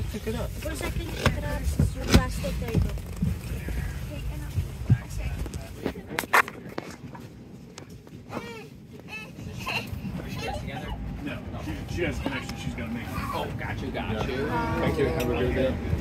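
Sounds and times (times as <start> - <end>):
low cabin rumble: 0.0 - 16.0
passengers' voices: 0.0 - 16.0.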